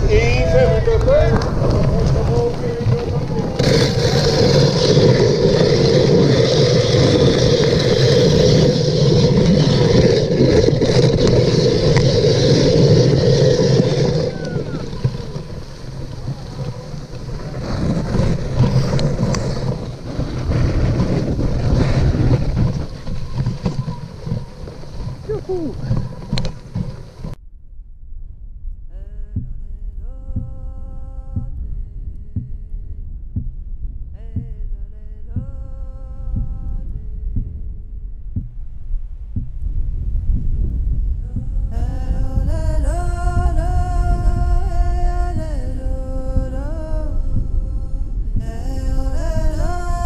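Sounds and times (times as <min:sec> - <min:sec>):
wind on microphone: 0:00.0 - 0:27.4, 0:28.1 - 0:50.0
sled runners hissing over snow: 0:00.1 - 0:27.4
short calls: 0:25.2 - 0:26.2.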